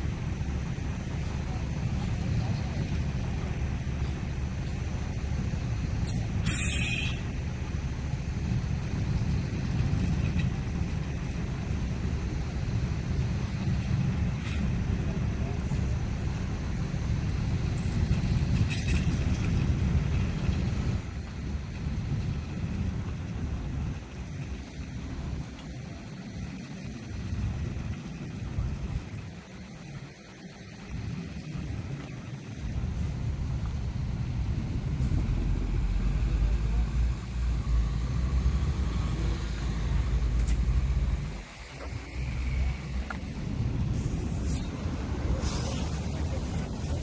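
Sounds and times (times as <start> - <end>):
diesel engine rumbling: 0.0 - 47.0
burst of hiss: 6.0 - 7.2, 43.9 - 46.6.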